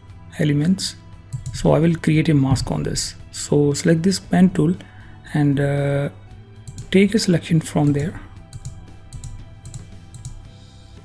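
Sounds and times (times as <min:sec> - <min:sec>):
faint background music: 0:00.0 - 0:11.0
computer mouse clicking: 0:01.3 - 0:01.7, 0:06.7 - 0:07.0, 0:07.8 - 0:10.5.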